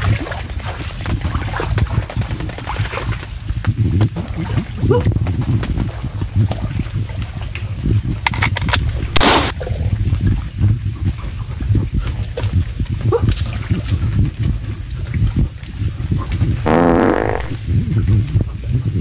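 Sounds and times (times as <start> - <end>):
low microphone rumble: 3.4 - 19.0.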